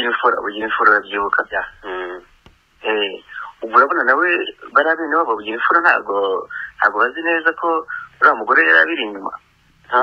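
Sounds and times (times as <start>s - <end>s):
person talking radio-like: 0.0s - 10.0s.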